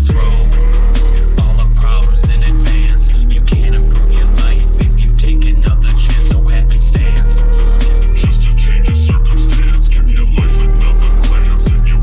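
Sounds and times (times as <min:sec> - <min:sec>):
booming kick drums: 0:00.0 - 0:12.0
hip hop beat with deep bass: 0:00.0 - 0:12.0.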